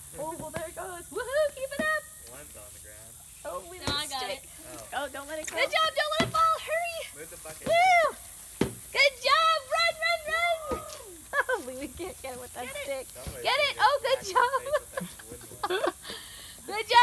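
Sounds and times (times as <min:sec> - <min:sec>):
children shouting and squealing: 0:05.5 - 0:11.8.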